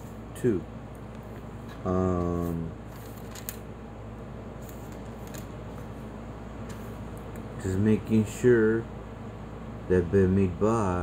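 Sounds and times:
low room hum: 0.0 - 11.0
book pages rustling: 2.4 - 3.6, 4.6 - 6.0.

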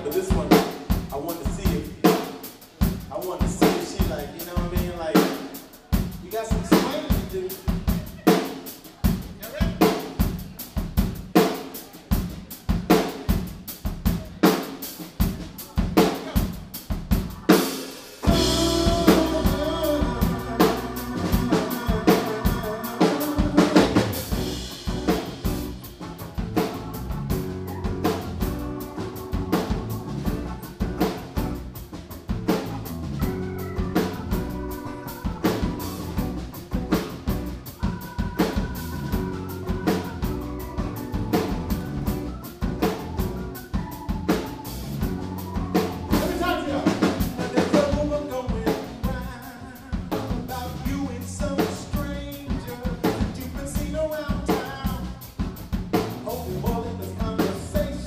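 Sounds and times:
drum kit groove: 0.0 - 58.0
live band playing: 0.0 - 58.0.

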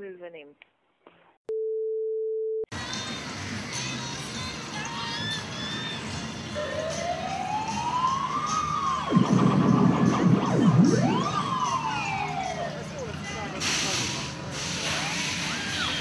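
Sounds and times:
siren wailing: 6.5 - 13.0
dense low sweeping sound: 9.0 - 12.3
short burst of hiss: 13.6 - 15.8.

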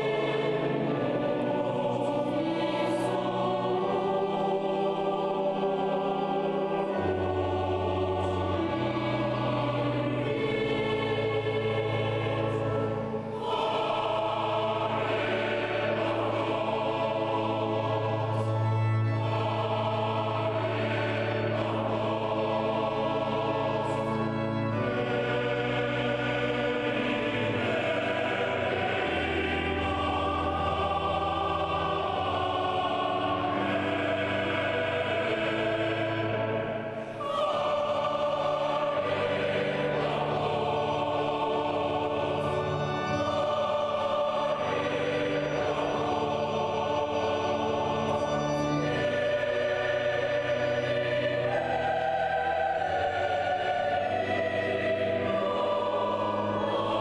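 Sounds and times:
choir singing sustained chords: 0.0 - 57.0.

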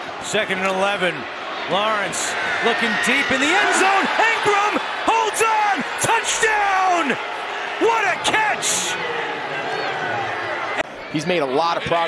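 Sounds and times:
men commentating excitedly: 0.2 - 10.5, 11.1 - 12.0.

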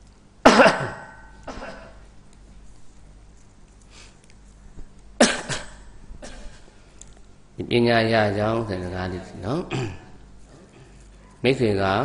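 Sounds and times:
person coughing: 0.4 - 2.0, 5.2 - 6.7, 9.7 - 10.2.

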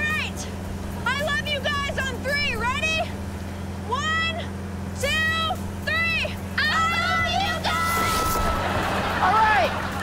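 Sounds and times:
aircraft engine drone: 0.0 - 10.0
person yelling: 6.6 - 8.5
rushing air: 7.7 - 9.2.

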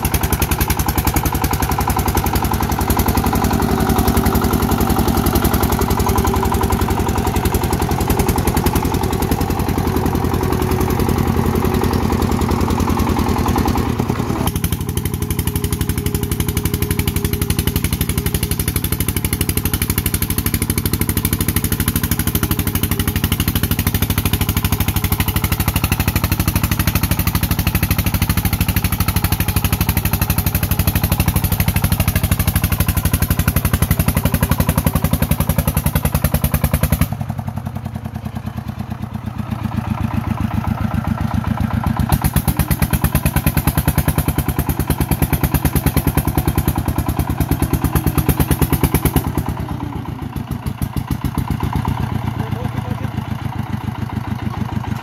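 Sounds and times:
diesel engine chugging under load: 0.0 - 55.0.

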